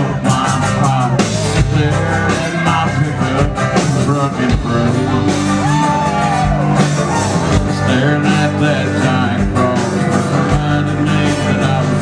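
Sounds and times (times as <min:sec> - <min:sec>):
live country band playing: 0:00.0 - 0:12.0.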